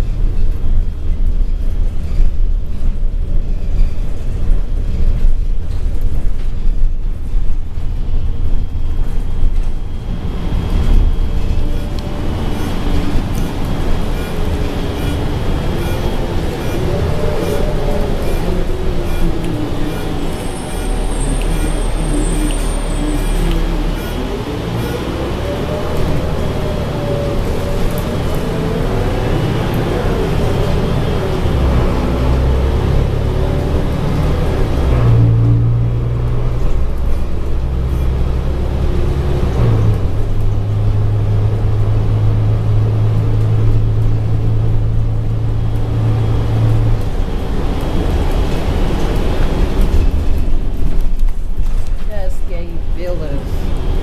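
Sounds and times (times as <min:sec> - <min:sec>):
bus engine and road rumble: 0:00.0 - 0:54.0.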